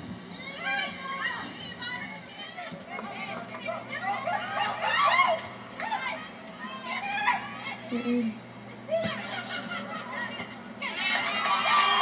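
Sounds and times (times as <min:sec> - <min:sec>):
high-pitched shouts and calls: 0:00.3 - 0:12.0.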